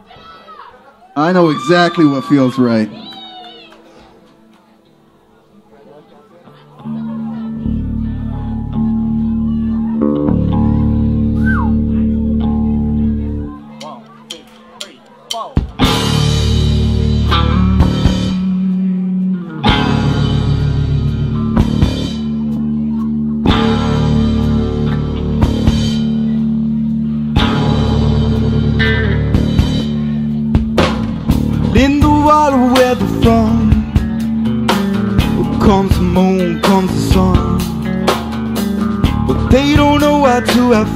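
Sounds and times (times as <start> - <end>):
electric guitar: 6.5 - 14.8, 15.6 - 40.9
bass guitar: 6.7 - 40.9
drums and cymbals: 13.8 - 18.9, 19.7 - 26.8, 27.4 - 40.9.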